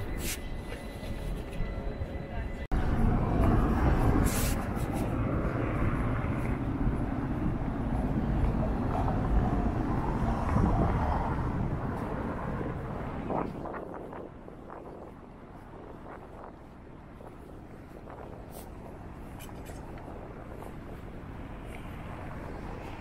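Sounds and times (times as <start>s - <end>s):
traffic rumble: 0.0s - 23.0s.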